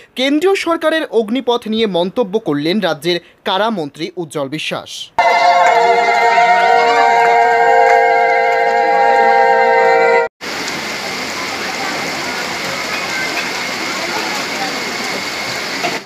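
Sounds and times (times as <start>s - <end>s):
chord of held musical notes: 5.2s - 10.3s.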